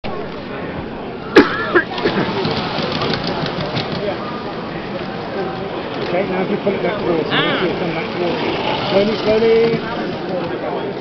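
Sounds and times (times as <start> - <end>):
model train wheels clattering: 1.9 - 11.0.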